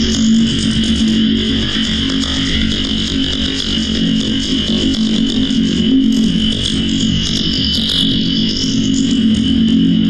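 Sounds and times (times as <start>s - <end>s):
electronic noise music drone: 0.0s - 10.0s.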